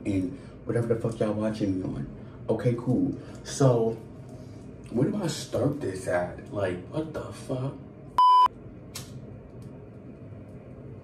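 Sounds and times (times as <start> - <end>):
short electronic beep: 8.2 - 8.5.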